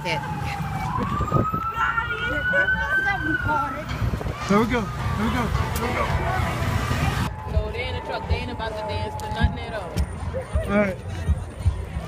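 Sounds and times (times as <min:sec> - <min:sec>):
emergency vehicle siren wailing: 0:00.0 - 0:09.6.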